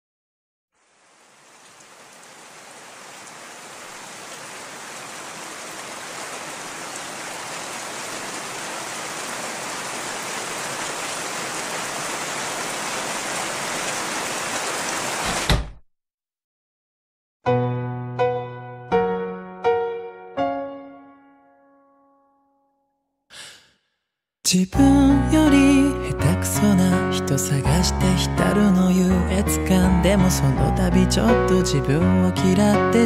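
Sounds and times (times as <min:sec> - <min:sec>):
rain hiss: 0:00.8 - 0:15.4.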